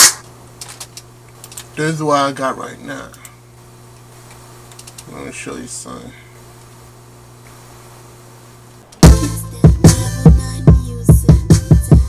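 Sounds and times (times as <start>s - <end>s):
low electrical hum: 0.0s - 11.1s.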